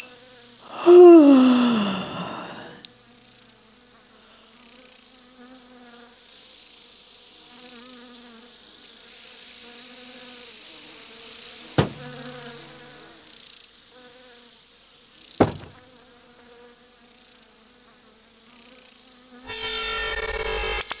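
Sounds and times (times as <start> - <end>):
fly buzzing: 0.0 - 6.2, 6.9 - 19.4
sharp smack: 11.8 - 12.2, 15.4 - 15.8.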